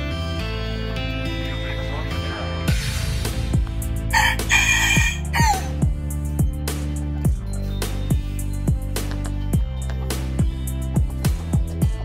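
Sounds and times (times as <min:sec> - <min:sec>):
background music with deep drums: 0:00.0 - 0:12.0
rooster crowing: 0:04.1 - 0:05.8.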